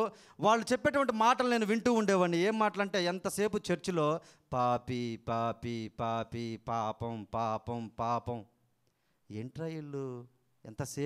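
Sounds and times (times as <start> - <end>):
man chanting: 0.0 - 8.5, 9.3 - 11.0.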